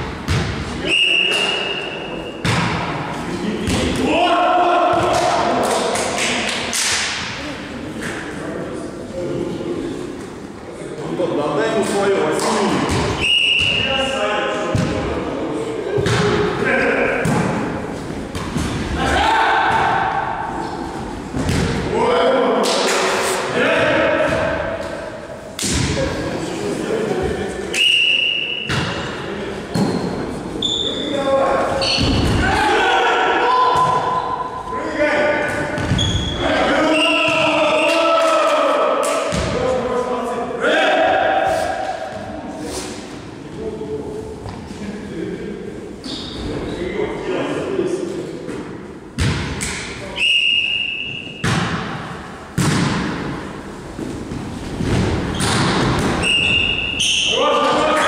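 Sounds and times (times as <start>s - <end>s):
volleyball hits echoing: 0.0s - 7.4s, 12.4s - 13.9s, 14.7s - 15.2s, 15.9s - 20.6s, 21.3s - 23.1s, 23.8s - 26.3s, 28.3s - 30.2s, 31.9s - 32.7s, 35.4s - 36.4s, 37.2s - 39.8s, 49.2s - 50.0s, 51.2s - 53.5s, 54.3s - 56.9s
players shouting calls: 0.8s - 2.4s, 3.8s - 5.8s, 18.9s - 20.6s, 30.7s - 39.8s, 40.4s - 42.2s.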